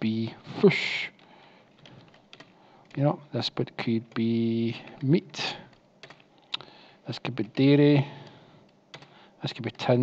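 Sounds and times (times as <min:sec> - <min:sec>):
faint keystrokes on keyboard: 0:01.1 - 0:03.1, 0:03.8 - 0:06.7, 0:07.3 - 0:09.2.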